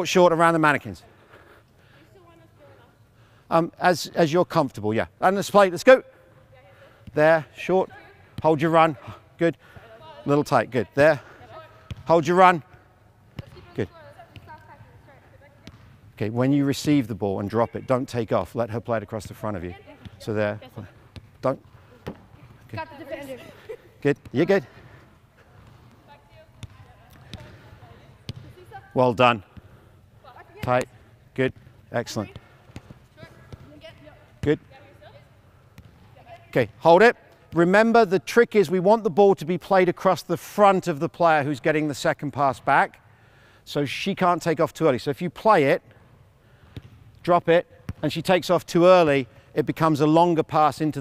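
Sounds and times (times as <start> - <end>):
soccer ball kicks: 11.9 - 12.1, 13.3 - 15.0, 22.0 - 22.9, 25.6 - 28.8, 31.5 - 34.8, 35.7 - 36.8, 46.7 - 47.0
ball kicked on artificial turf: 28.2 - 28.6.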